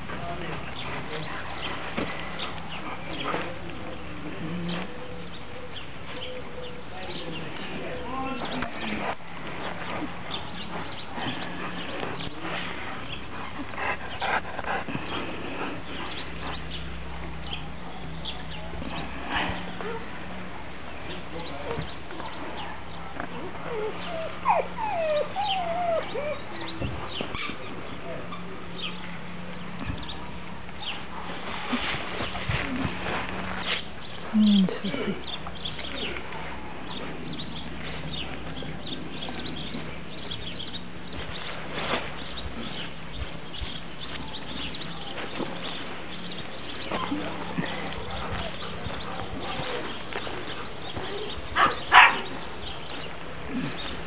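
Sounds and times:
dog whimpering: 0:23.6 - 0:26.7.

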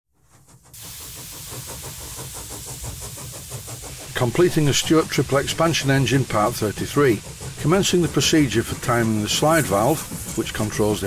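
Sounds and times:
steam engine hissing and beating: 0:00.2 - 0:11.0.

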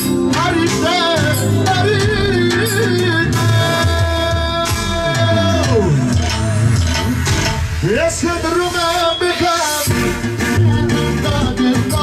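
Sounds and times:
electronic keyboard dance music: 0:00.0 - 0:12.0.

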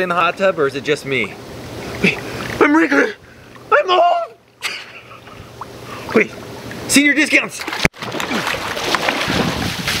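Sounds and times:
hot tub water churning: 0:00.0 - 0:10.0.

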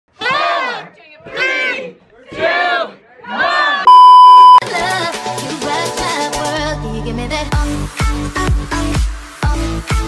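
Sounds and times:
loud electronic test tone beep: 0:03.9 - 0:04.6.

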